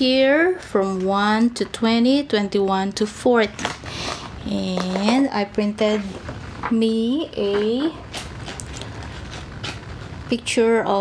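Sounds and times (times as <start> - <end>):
paper rustling: 7.4 - 10.2.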